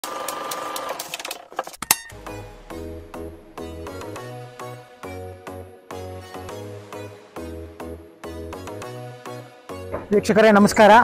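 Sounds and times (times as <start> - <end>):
steady tone: 2.1 - 6.0.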